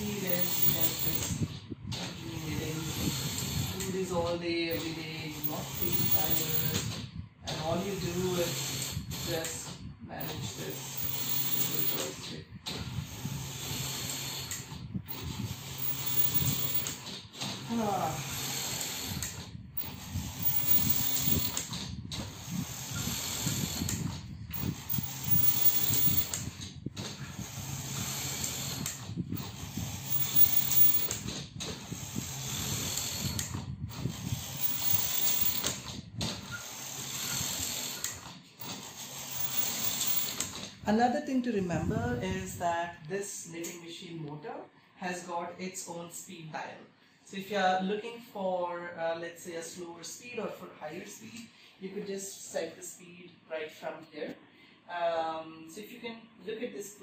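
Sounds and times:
knitting machine carriage running: 0:00.0 - 0:01.4, 0:04.7 - 0:07.0, 0:10.2 - 0:12.2, 0:15.1 - 0:23.8, 0:24.5 - 0:26.4, 0:27.5 - 0:31.3, 0:31.9 - 0:40.6.

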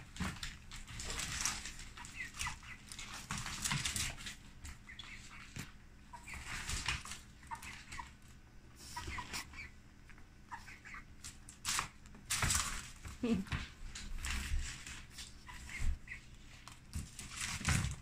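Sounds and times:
chicken clucking softly: 0:07.3 - 0:11.2.

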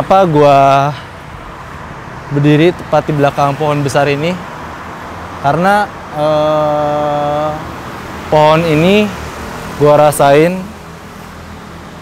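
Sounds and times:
man saying eh: 0:05.5 - 0:07.6.

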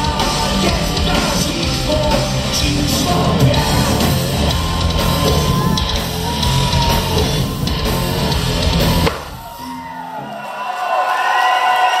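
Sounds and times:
heavy rock band playing: 0:00.0 - 0:10.4
crowd noise: 0:00.0 - 0:12.0.

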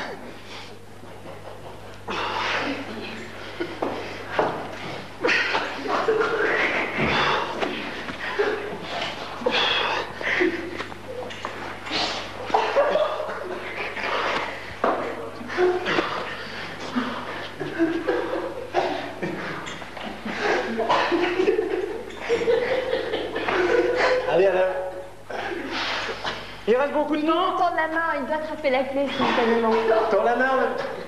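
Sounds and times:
steady low hum: 0:00.0 - 0:31.0
woman laughing: 0:12.4 - 0:13.9, 0:20.2 - 0:24.3.

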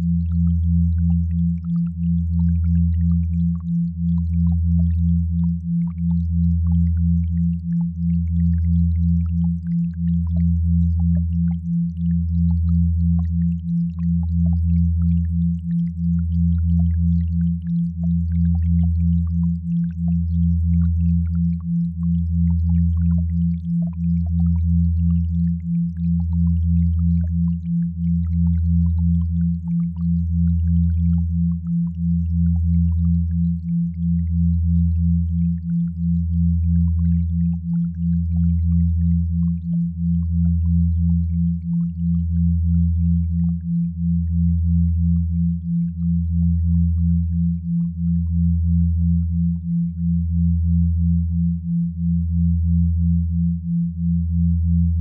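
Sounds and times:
deep humming sine tone: 0:00.0 - 0:55.0.

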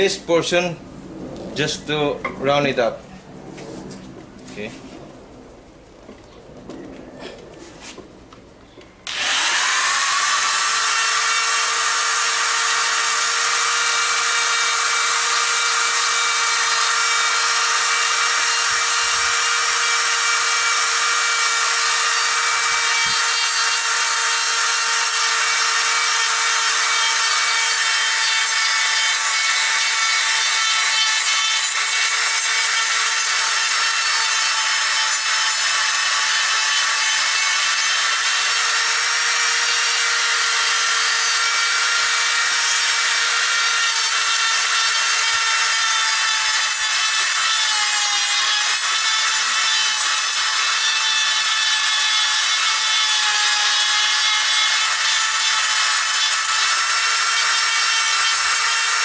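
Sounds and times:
electric rotary grinder on wood: 0:09.1 - 0:59.0.

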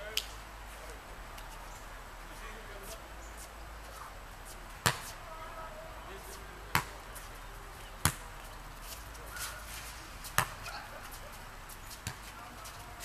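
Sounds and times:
ball thuds on hard court: 0:04.8 - 0:05.1, 0:08.0 - 0:08.2, 0:10.4 - 0:10.7.

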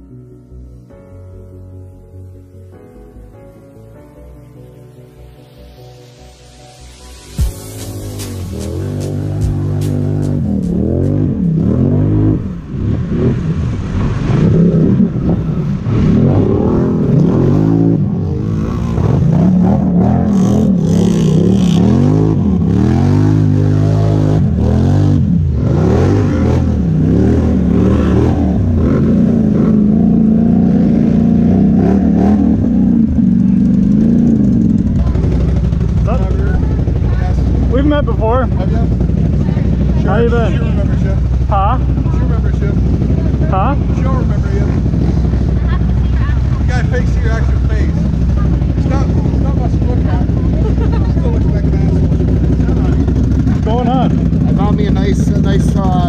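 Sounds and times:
atv engine revving: 0:07.4 - 0:56.0.

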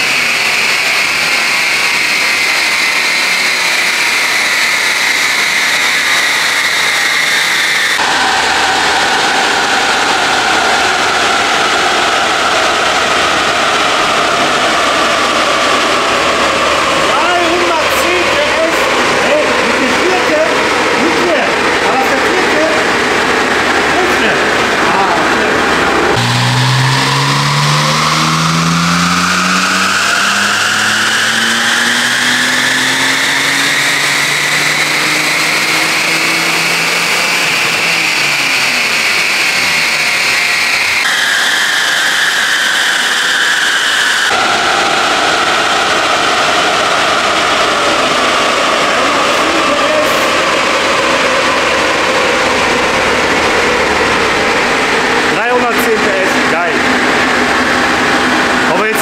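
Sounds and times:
car engine revving: 0:00.0 - 0:59.0
supercharger whine: 0:00.0 - 0:59.0.

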